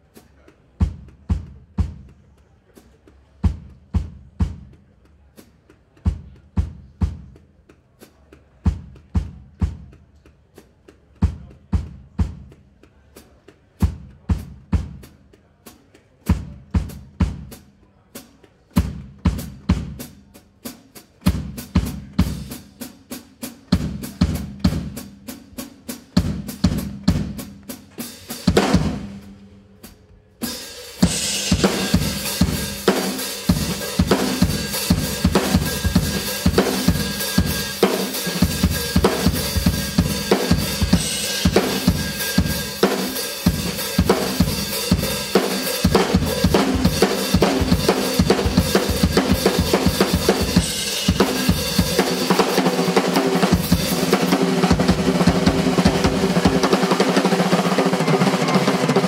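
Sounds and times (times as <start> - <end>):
drum kit groove: 0.0 - 59.0.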